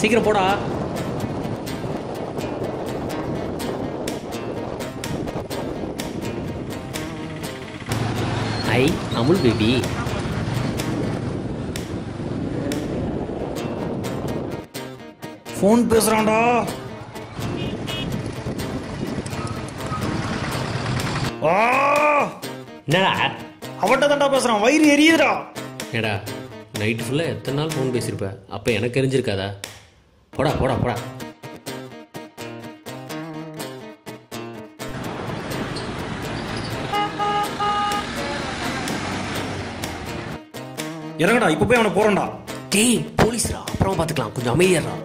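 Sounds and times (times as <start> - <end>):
road traffic noise: 0.6 - 14.3, 16.7 - 21.4, 34.9 - 40.4
vehicle engines running: 6.6 - 13.0, 16.9 - 21.3, 34.9 - 40.4
vehicle horn honking: 17.4 - 18.2, 36.5 - 38.6.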